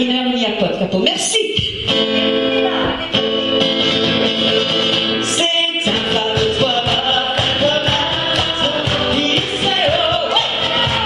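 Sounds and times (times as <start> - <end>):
acoustic guitar strummed: 1.6 - 11.0
other instruments: 1.6 - 11.0
person singing: 5.2 - 11.0.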